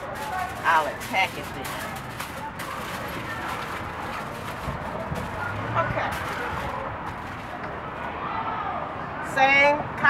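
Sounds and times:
faint indistinct voices: 0:00.0 - 0:10.0
street background noise: 0:00.0 - 0:10.0.

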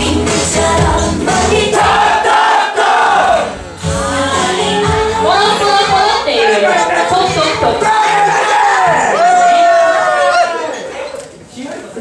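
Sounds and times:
dance track with singing: 0:00.0 - 0:08.4.

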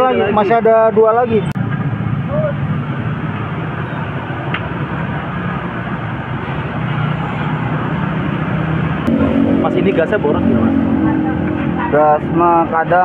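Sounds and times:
low steady rumble: 0:09.1 - 0:12.9.

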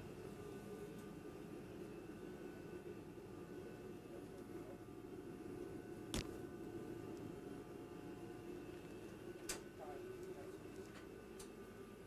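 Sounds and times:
faint steady tones: 0:00.0 - 0:12.0
ventilation fans humming: 0:00.0 - 0:12.0.

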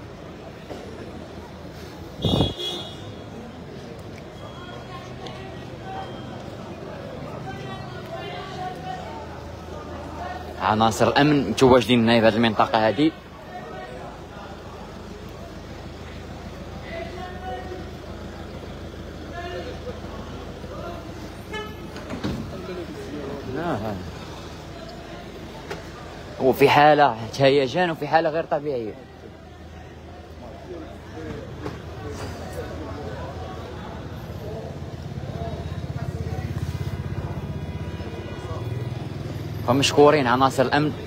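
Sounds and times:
people's voices: 0:00.0 - 0:41.0
van engine idling: 0:13.2 - 0:41.0.

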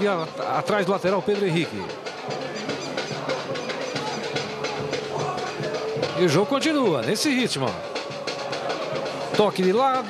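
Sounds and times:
drumbeats in the stands: 0:00.0 - 0:10.0.

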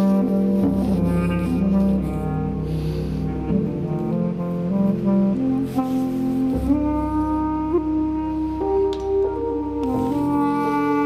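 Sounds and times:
clarinet long held notes: 0:00.0 - 0:11.0
synthesizer deep bass notes: 0:00.0 - 0:11.0.

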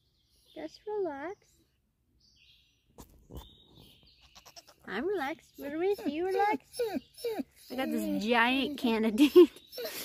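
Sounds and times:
goat bleating: 0:04.2 - 0:05.1.

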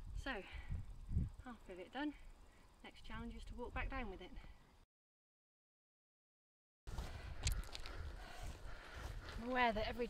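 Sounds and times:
wind rumble on microphone: 0:00.0 - 0:01.5.

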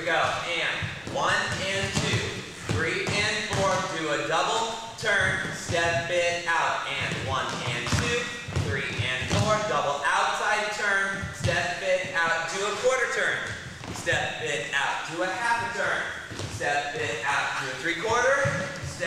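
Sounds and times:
person talking: 0:00.0 - 0:19.0.

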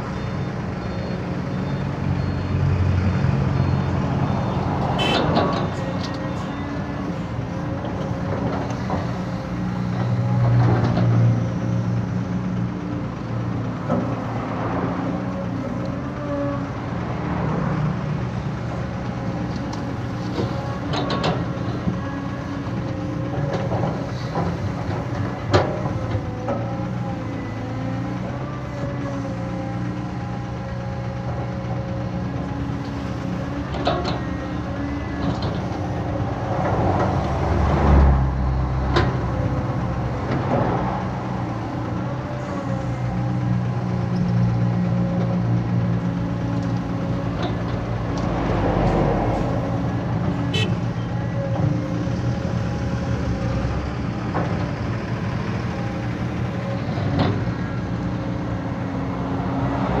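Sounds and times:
excavator diesel engine running: 0:00.0 - 1:00.0.

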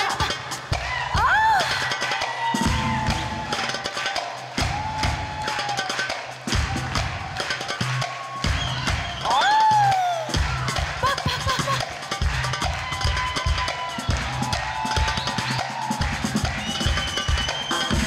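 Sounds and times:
live band dance music: 0:00.0 - 0:18.0
steady drum beat: 0:00.0 - 0:18.0.

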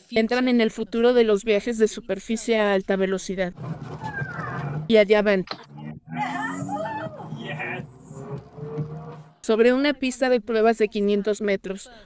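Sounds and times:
background music: 0:03.6 - 0:10.0
faint voices: 0:05.5 - 0:08.4.

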